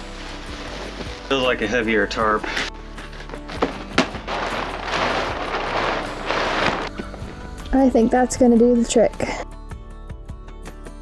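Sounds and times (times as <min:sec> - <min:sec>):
plastic tarp rustling and crackling: 0:00.0 - 0:07.4
sharp tarp snap: 0:03.2 - 0:07.0.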